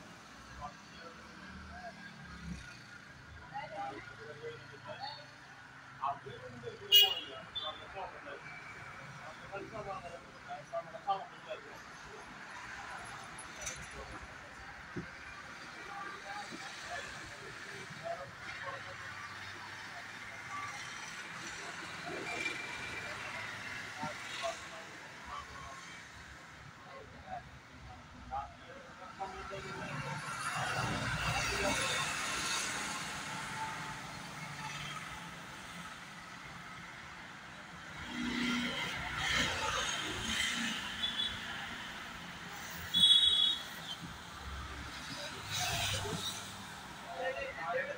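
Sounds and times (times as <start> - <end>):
road traffic: 0.0 - 47.9.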